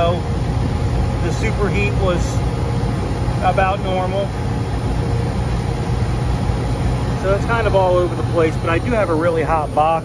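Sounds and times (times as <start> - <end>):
air conditioning unit humming: 0.0 - 10.0.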